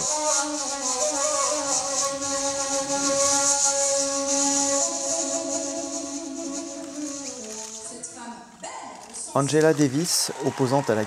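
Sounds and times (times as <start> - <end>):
solo flute playing: 0.0 - 8.3.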